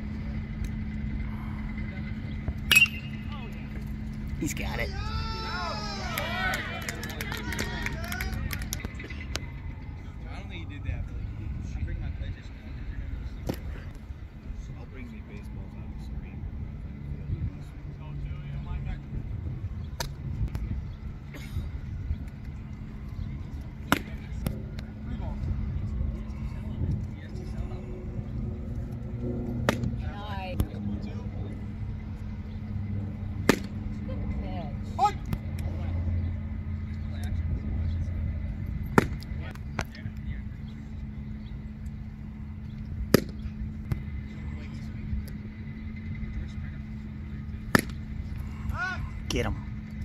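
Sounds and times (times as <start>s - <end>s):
faint distant voices: 0.0s - 50.0s
steady low hum: 0.0s - 50.0s
baseball popping into leather glove: 13.4s - 13.7s, 33.4s - 33.8s, 38.9s - 40.0s, 43.1s - 44.1s, 47.7s - 48.0s.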